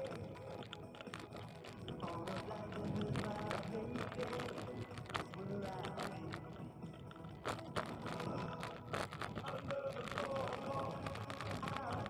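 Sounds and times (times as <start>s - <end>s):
bicycle clicks and rattles: 0.0s - 12.0s.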